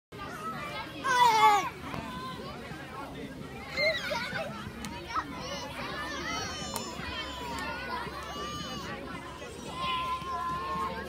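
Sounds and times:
children calling and chattering: 0.1 - 11.0.

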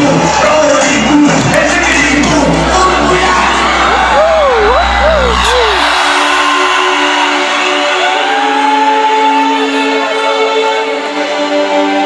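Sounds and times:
heavy bass pulse: 1.1 - 6.9
crowd whooping: 2.5 - 10.8.

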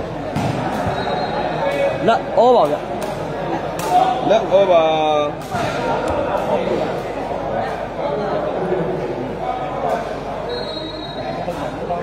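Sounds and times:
crowd chatter in a large hall: 0.0 - 12.0.

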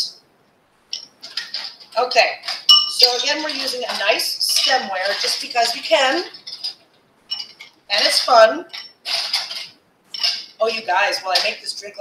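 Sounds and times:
glassware and bar tools clinking: 0.9 - 10.6.

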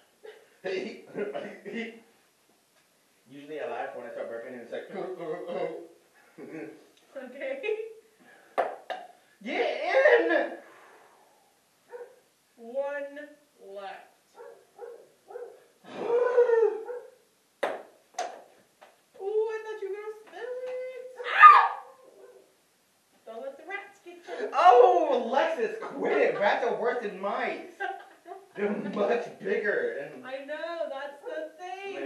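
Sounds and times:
voices in a small room: 0.0 - 32.0.

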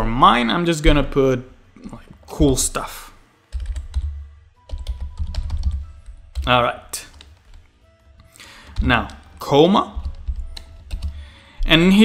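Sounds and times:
background music: 0.0 - 12.0
computer keyboard typing: 3.5 - 9.4, 10.0 - 11.2.

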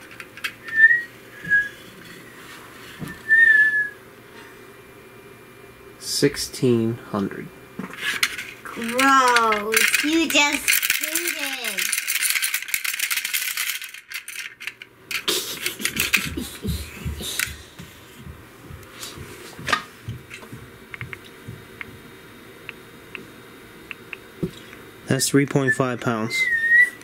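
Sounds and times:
battery pack rattling: 8.0 - 16.4.

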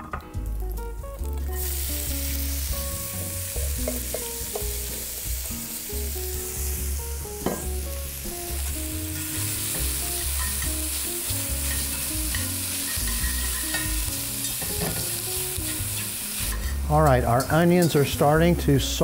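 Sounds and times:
onions sizzling in hot oil: 0.5 - 19.0.

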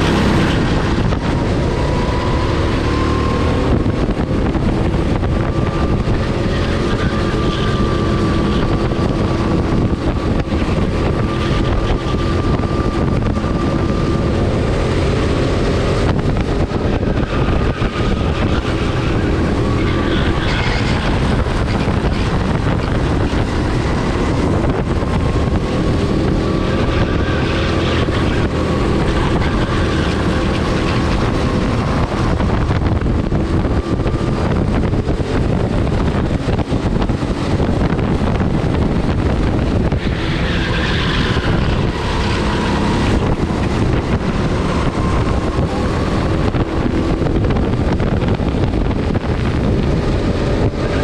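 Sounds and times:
kart engine running: 0.0 - 51.0
wind noise on microphone: 0.0 - 51.0.

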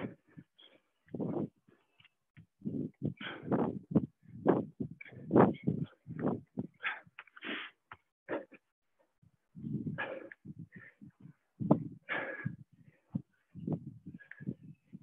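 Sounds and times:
people breathing hard: 2.6 - 7.8, 9.6 - 14.9.

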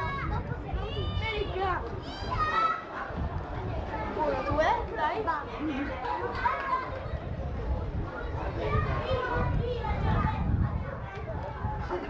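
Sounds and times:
chatter of voices: 0.0 - 12.0.

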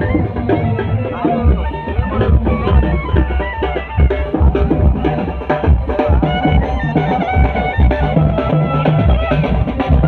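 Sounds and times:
drums beating: 0.0 - 10.0
reed pipe melody: 0.0 - 10.0.

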